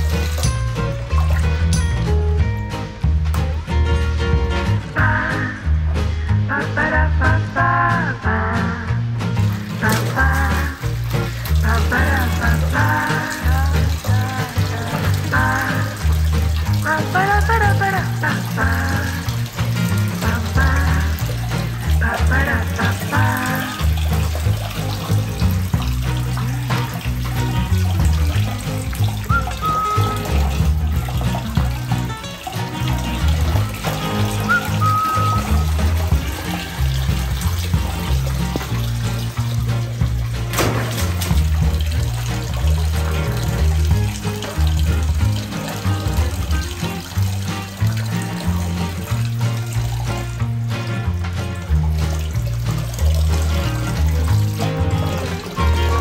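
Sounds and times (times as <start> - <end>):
tap water splashing into basin: 0.0 - 2.1, 9.2 - 56.0
background music with bass beat: 0.0 - 56.0.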